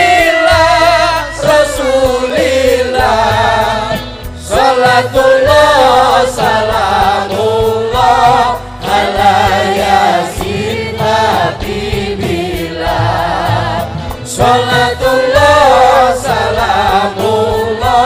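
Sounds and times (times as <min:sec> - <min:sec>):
band accompaniment: 0:00.0 - 0:18.0
percussion hits: 0:00.0 - 0:18.0
voices singing devotional song: 0:00.0 - 0:18.0.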